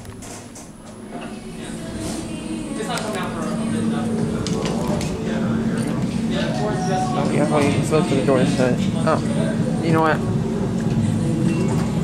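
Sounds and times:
steady low hum: 0.0s - 12.0s
people talking: 1.1s - 10.4s.

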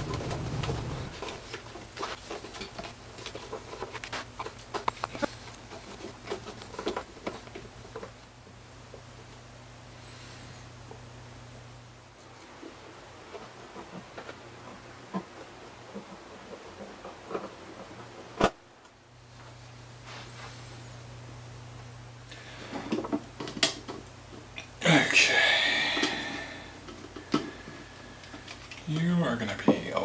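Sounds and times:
scratchy rustle: 0.0s - 7.1s.

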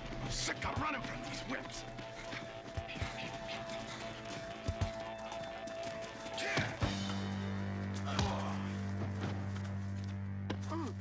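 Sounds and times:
low synthesizer drone: 0.0s - 11.0s.

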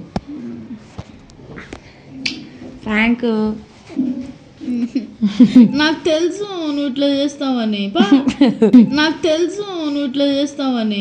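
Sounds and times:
soft voices: 0.0s - 1.0s, 1.6s - 8.3s.

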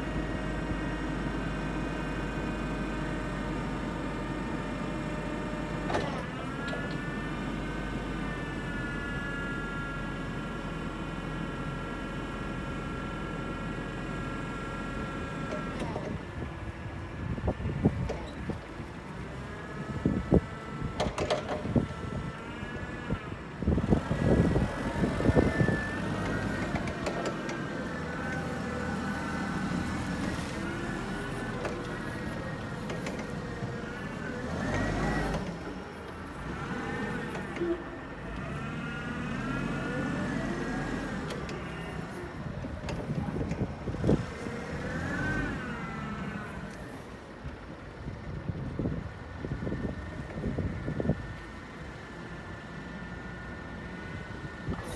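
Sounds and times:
forklift engine and drive whine: 0.0s - 54.9s.

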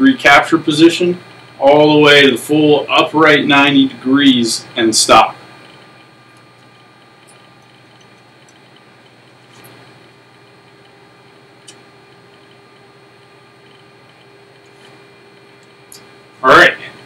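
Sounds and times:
room hum: 0.0s - 17.0s
bow rest clicks and ticks: 11.6s - 14.7s.

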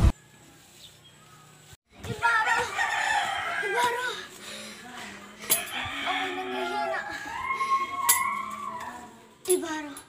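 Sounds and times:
rooster crowing: 2.6s - 3.8s, 5.6s - 9.0s.

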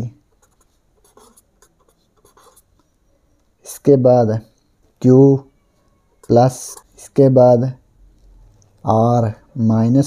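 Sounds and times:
marker pen scratching on paper: 0.3s - 2.9s, 6.2s - 7.2s.

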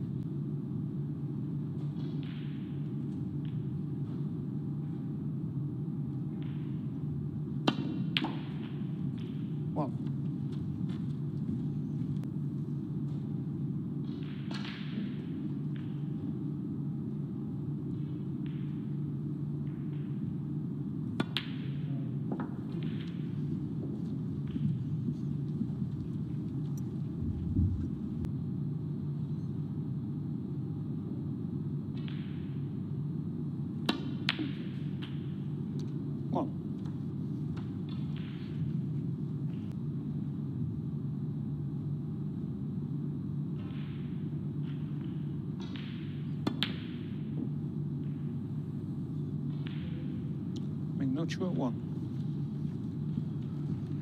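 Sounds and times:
low arena hum: 0.0s - 54.0s.

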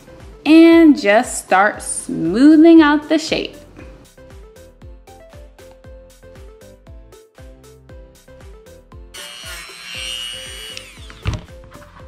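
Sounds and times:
background music with beat: 3.6s - 9.2s
rotary tool whining: 9.2s - 11.5s.

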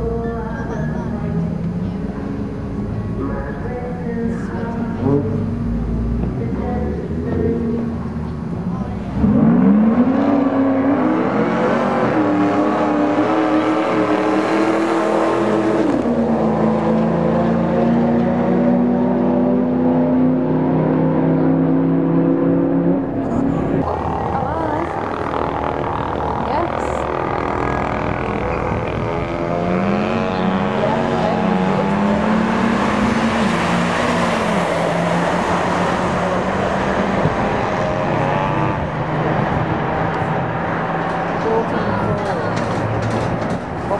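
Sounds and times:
car engines revving: 0.0s - 43.9s.

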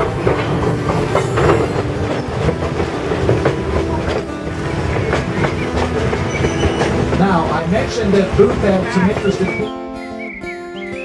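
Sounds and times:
train cars rumbling: 0.0s - 11.0s
wheels clicking over rails: 0.0s - 11.0s.

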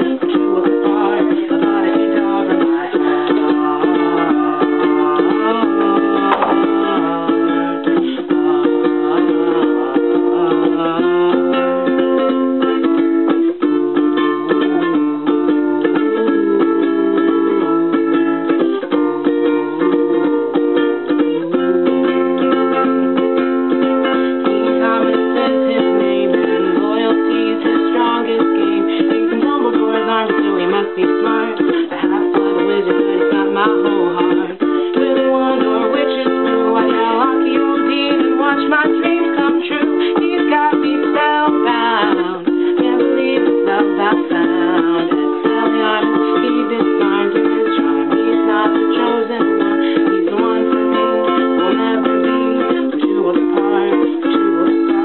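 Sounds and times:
ukulele strumming chords: 0.0s - 55.0s.

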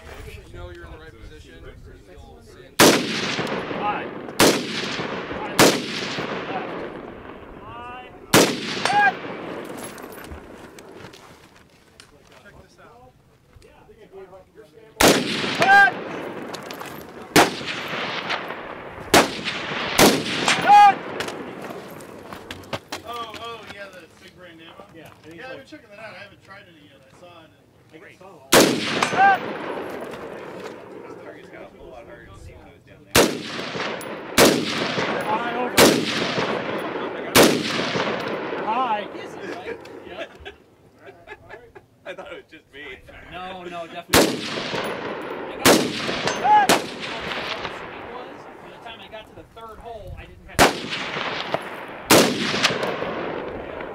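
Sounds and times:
rifle shots: 2.8s - 7.6s, 8.3s - 11.0s, 15.0s - 22.3s, 28.5s - 31.2s, 33.1s - 40.0s, 44.0s - 49.0s, 50.5s - 53.9s.

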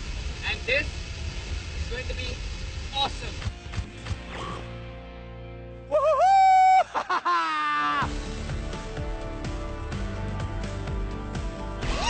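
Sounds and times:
music: 0.0s - 12.0s
man yelling whoo: 5.9s - 8.1s.

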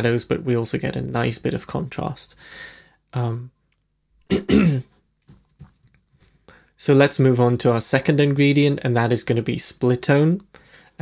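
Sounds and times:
person clearing throat: 4.3s - 4.9s.

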